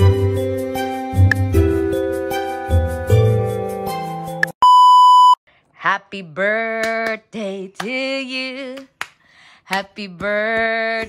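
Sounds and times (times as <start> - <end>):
background music: 0.0 - 4.5
loud electronic beep: 4.6 - 5.4.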